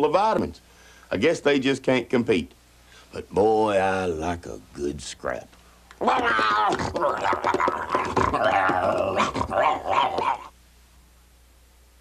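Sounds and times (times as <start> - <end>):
man imitating dog fight: 5.9 - 10.5.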